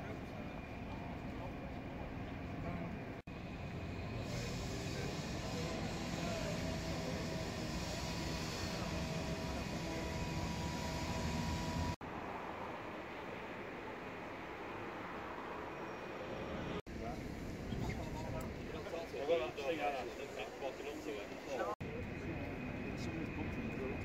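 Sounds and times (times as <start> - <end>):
vehicle engine running: 3.3 - 12.0.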